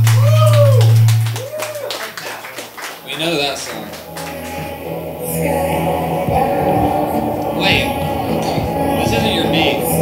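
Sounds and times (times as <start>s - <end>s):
deep bass note: 0.0s - 1.4s
people clapping: 0.0s - 4.8s.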